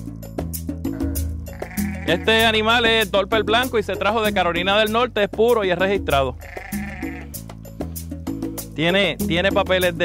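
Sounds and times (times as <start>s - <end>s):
background music with bass: 0.0s - 10.0s
sheep bleating: 0.9s - 2.6s, 6.3s - 7.4s.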